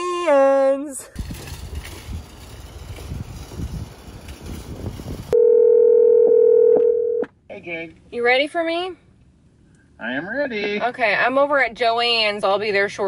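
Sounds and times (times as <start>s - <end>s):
phone ringback tone: 5.4s - 7.2s.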